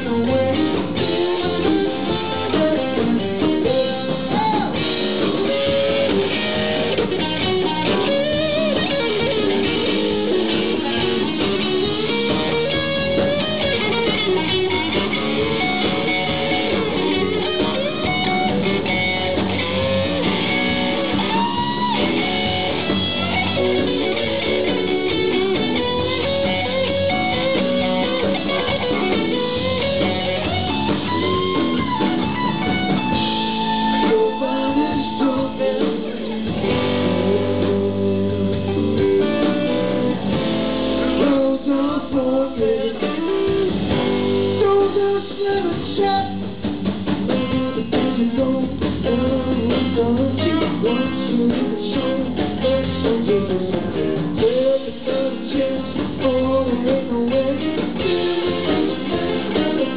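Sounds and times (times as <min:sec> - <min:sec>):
blues-rock band playing: 0:00.0 - 0:59.9
electric guitar lead line: 0:00.0 - 0:59.9.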